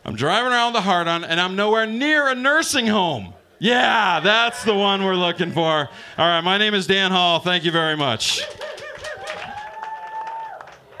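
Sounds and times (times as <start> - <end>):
audience clapping: 7.9 - 11.0
person cheering: 8.2 - 10.7.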